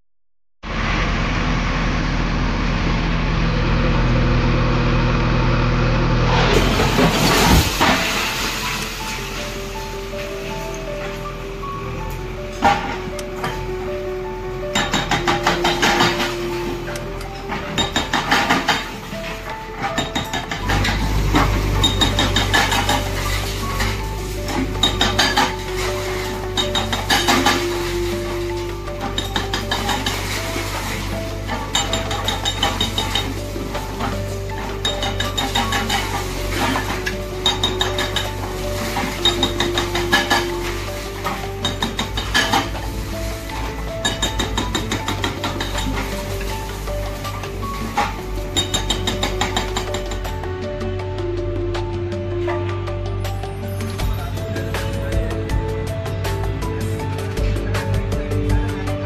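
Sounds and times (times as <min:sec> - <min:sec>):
backhoe engine running: 0:00.6 - 0:59.0
falling masonry clatter: 0:06.4 - 0:11.2, 0:14.7 - 0:50.4.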